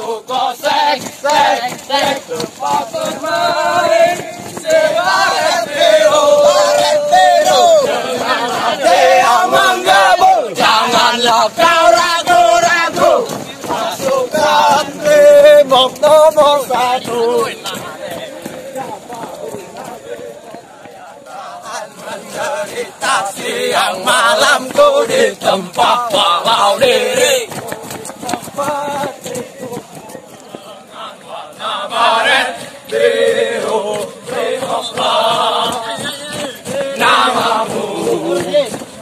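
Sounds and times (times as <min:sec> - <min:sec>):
group singing cadence: 0:00.0 - 0:29.8, 0:30.4 - 0:39.0.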